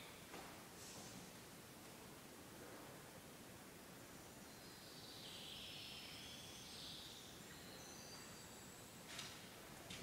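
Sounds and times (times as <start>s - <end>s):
faint high-pitched twittering: 4.2s - 9.1s.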